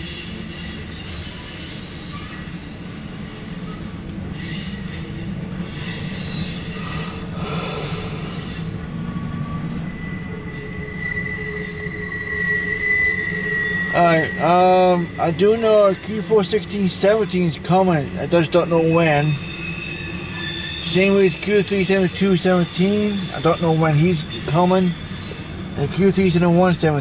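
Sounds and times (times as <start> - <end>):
freight train rumbling past: 0.0 - 27.0
wheels squealing on rails: 0.0 - 27.0.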